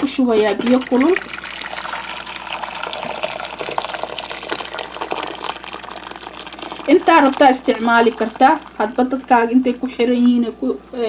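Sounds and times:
water pouring into metal pot: 0.6s - 10.6s.

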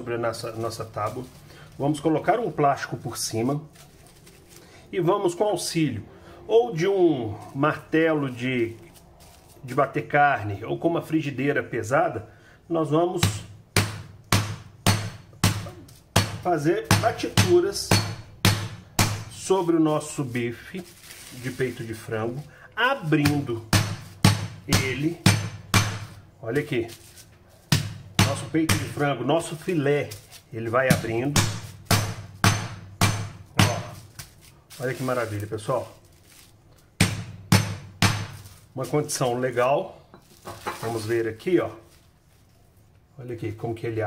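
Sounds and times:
skillet pounding meat thuds: 13.2s - 19.5s, 23.1s - 26.3s, 27.7s - 29.0s, 30.8s - 34.4s, 37.0s - 38.5s.

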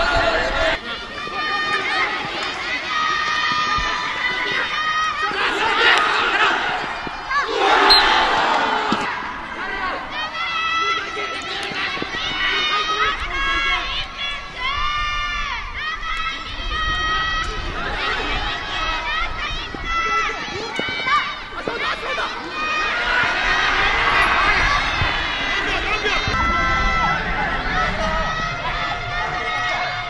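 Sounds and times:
crowd shouting encouragement: 0.0s - 30.0s.

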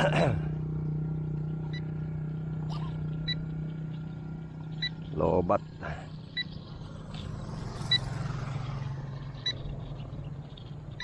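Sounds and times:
low engine hum: 0.0s - 11.0s
motorcycle engine passing: 0.0s - 11.0s.

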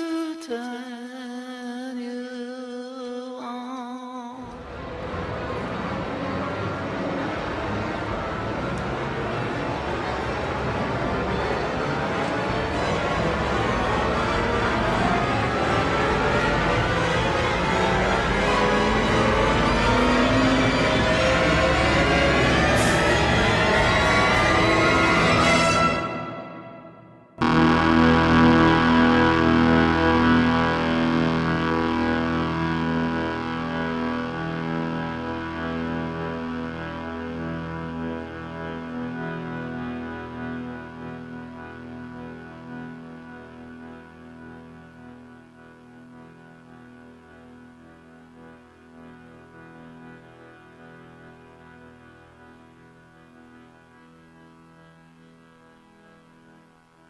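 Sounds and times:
orchestral crescendo: 4.5s - 54.0s
piano chord ringing: 21.4s - 33.2s.

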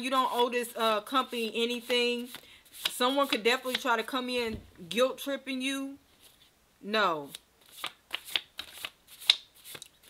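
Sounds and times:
cards being shuffled: 1.3s - 3.9s, 7.3s - 10.0s.

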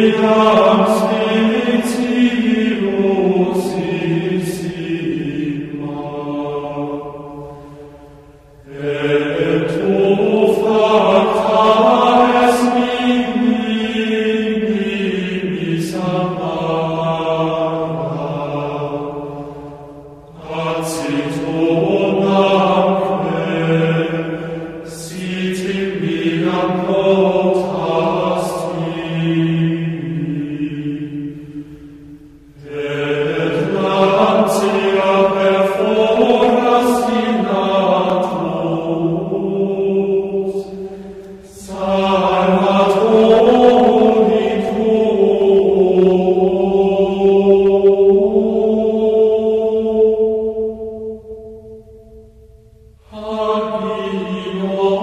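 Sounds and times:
voices singing chant: 0.0s - 52.0s, 53.0s - 55.0s.

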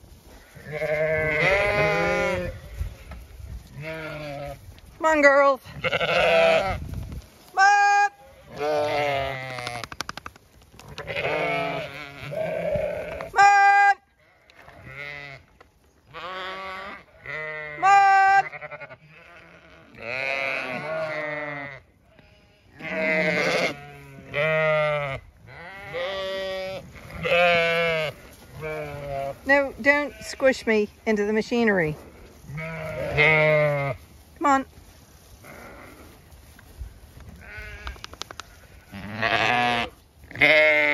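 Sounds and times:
sheep bleating: 0.3s - 4.6s, 5.6s - 6.8s, 7.6s - 9.8s, 10.9s - 15.5s, 16.1s - 30.8s, 32.0s - 34.6s, 35.4s - 36.2s, 37.4s - 40.9s.

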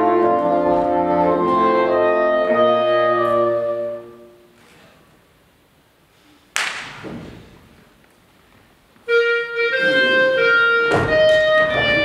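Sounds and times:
sharp percussive hit: 6.6s - 7.2s.

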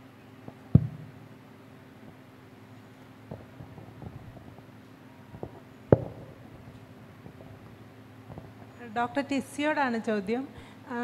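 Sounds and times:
steady low hum: 0.0s - 11.0s
sharp knocks: 0.7s - 1.1s, 5.4s - 6.6s.

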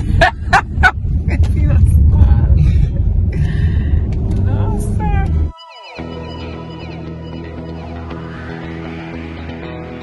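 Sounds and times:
car cabin road rumble: 0.0s - 5.5s
people talking: 1.3s - 2.8s, 4.4s - 5.5s.

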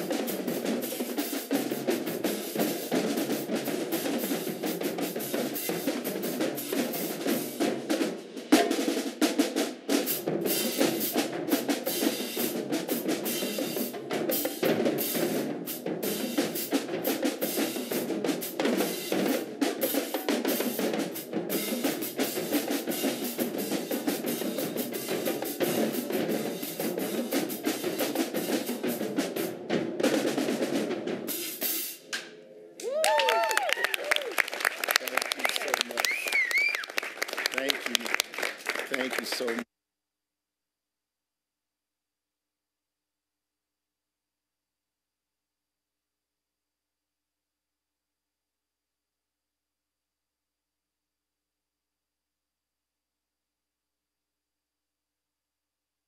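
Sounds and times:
snare drums: 0.0s - 39.7s.

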